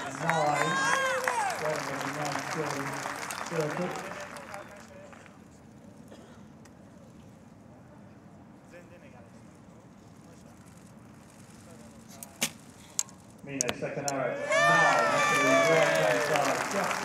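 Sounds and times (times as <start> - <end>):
quiet crowd background: 0.0 - 17.0.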